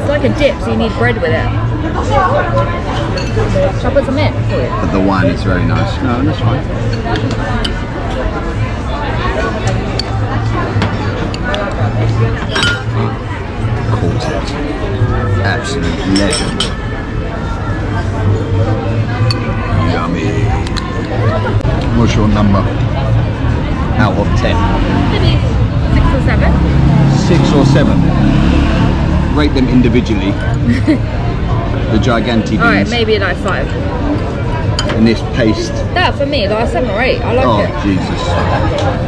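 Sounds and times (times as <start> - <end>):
people talking: 0.0 - 16.7, 17.6 - 22.8, 23.9 - 28.3, 29.3 - 34.2, 34.8 - 39.0
diners chatter: 0.0 - 39.0
metal spoon clinking ceramic dish: 12.5 - 13.0, 16.1 - 16.8.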